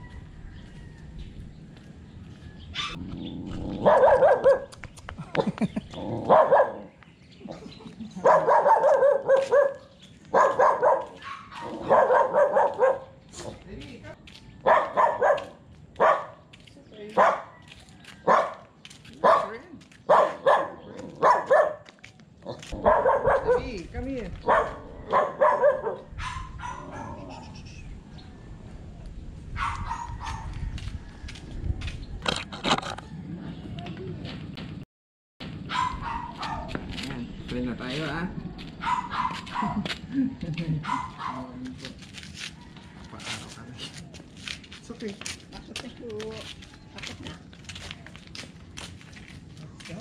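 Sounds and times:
dog barking: 2.8s - 3.0s, 3.8s - 4.7s, 6.2s - 6.9s, 8.2s - 13.2s, 14.6s - 16.4s, 17.1s - 17.6s, 18.2s - 21.9s, 22.7s - 23.8s, 24.4s - 27.5s, 29.6s - 30.6s, 35.7s - 36.9s, 38.8s - 39.9s, 40.8s - 41.6s.

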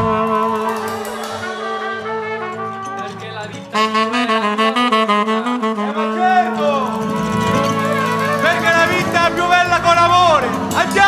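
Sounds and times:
band with saxophone and brass: 0.0s - 11.0s.

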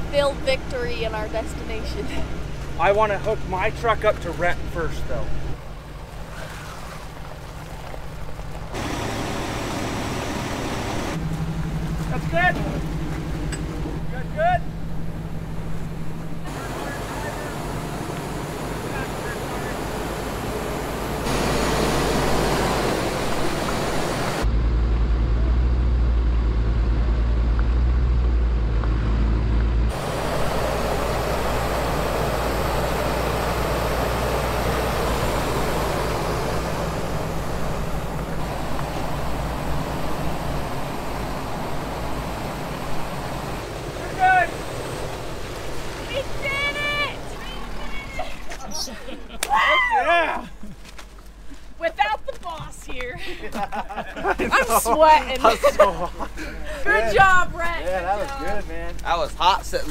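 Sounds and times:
truck engines running: 0.0s - 59.9s
heavy low rumble: 8.0s - 48.1s.

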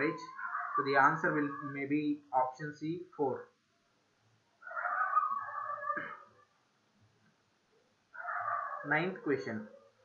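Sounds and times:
drawn-out animal call: 0.2s - 1.7s, 4.6s - 6.3s, 8.2s - 8.9s.

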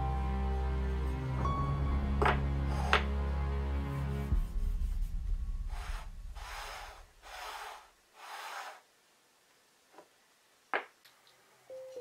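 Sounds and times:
wood scraping on wood: 5.7s - 8.8s.

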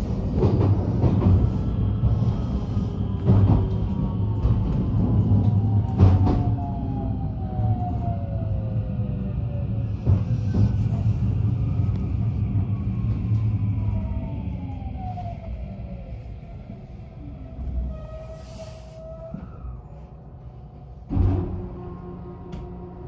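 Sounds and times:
train rumble: 0.0s - 23.0s.

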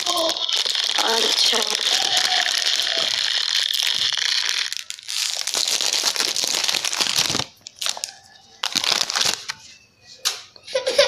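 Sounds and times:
packaging crinkling: 0.0s - 9.6s.

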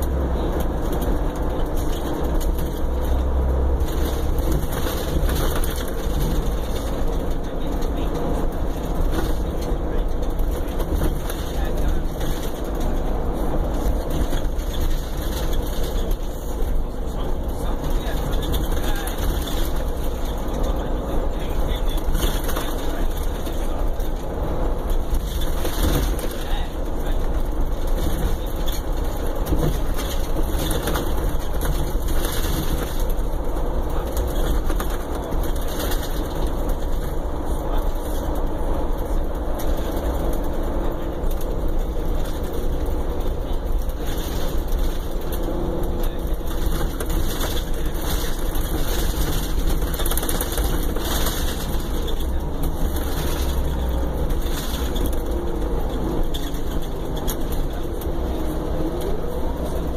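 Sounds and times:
diesel engine: 0.0s - 59.9s
road noise: 0.0s - 59.9s.

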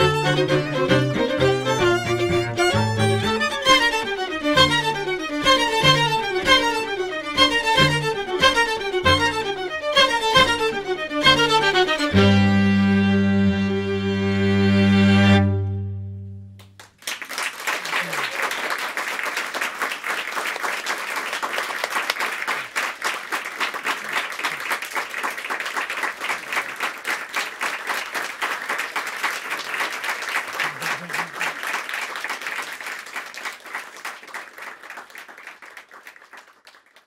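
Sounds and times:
audience applauding: 0.0s - 9.6s, 16.6s - 37.0s.

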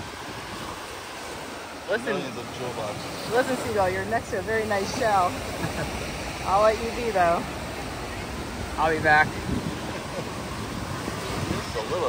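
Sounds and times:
small waves washing on sand: 0.0s - 12.0s
wind on microphone: 3.1s - 12.0s.

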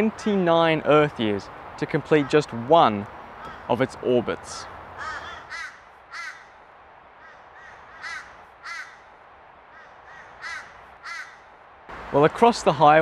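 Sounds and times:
bird calling: 3.4s - 3.8s, 4.5s - 11.6s.

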